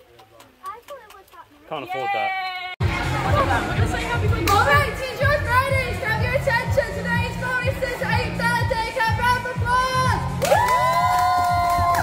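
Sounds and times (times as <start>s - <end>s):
background music: 2.8s - 12.0s.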